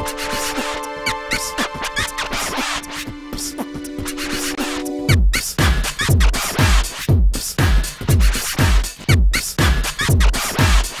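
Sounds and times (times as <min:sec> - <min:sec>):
held synth chord: 0:00.0 - 0:05.1
electronic drum beat: 0:00.0 - 0:11.0
record scratching: 0:00.1 - 0:03.1.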